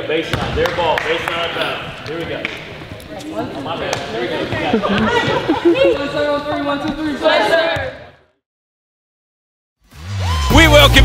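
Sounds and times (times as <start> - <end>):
basketball bouncing on gym floor: 0.2 - 0.8
team cheer: 10.0 - 11.0.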